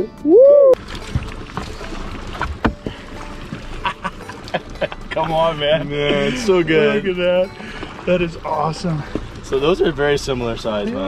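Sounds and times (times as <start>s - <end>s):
dull knocks: 1.0s - 3.8s.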